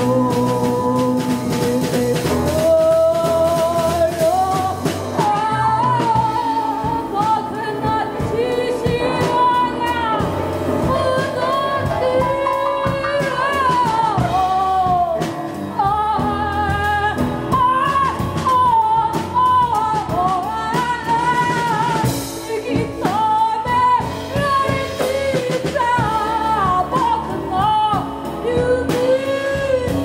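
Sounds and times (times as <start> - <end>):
drum kit: 0.0 - 30.0
piano: 0.0 - 30.0
upright double bass: 0.0 - 30.0
woman singing: 0.0 - 30.0.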